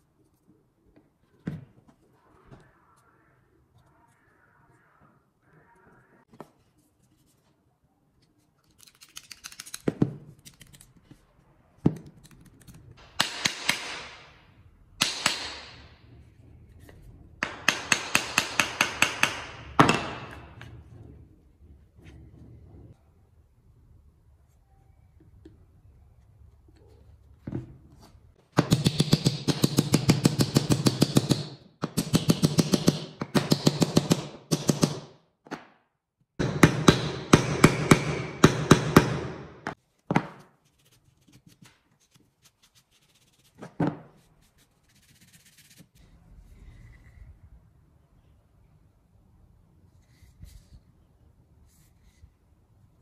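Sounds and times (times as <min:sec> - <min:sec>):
hammer strikes: 0:13.0 - 0:16.0, 0:17.4 - 0:20.6, 0:28.5 - 0:35.8, 0:36.4 - 0:40.4.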